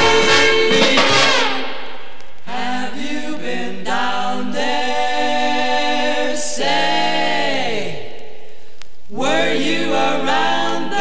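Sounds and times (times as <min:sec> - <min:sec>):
jazz vocal and trombone record: 0:00.0 - 0:11.0.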